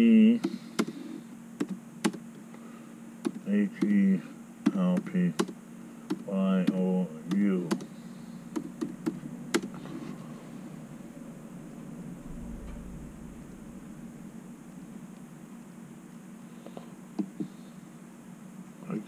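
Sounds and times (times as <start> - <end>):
low room hum: 0.0 - 19.0
laptop keyboard typing: 4.6 - 7.9.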